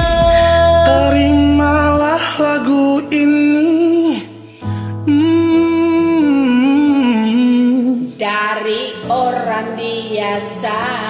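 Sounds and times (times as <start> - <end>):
person singing wordless melody: 0.0 - 11.0
slow pop ballad backing track: 0.0 - 11.0.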